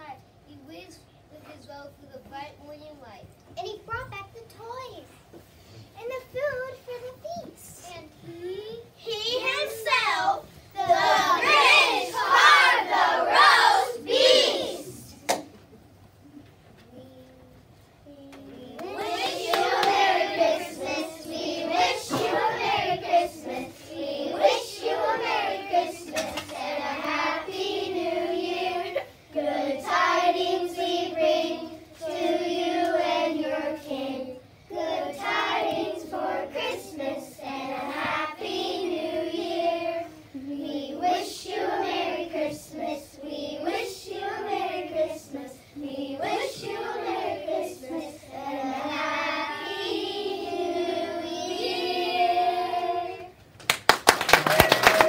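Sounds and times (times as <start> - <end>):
young children singing: 9.2 - 15.2, 18.4 - 53.4.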